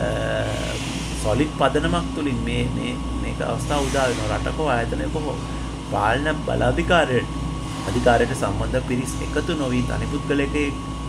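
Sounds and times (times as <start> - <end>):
man speaking: 0.0 - 10.8
low hum: 0.0 - 11.0.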